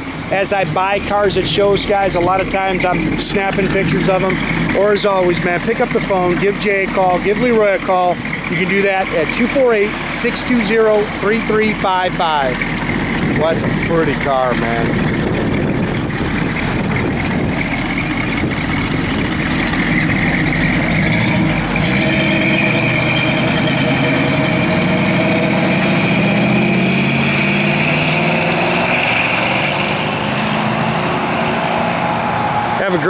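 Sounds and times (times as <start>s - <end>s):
car engine idling and accelerating: 0.0s - 33.0s.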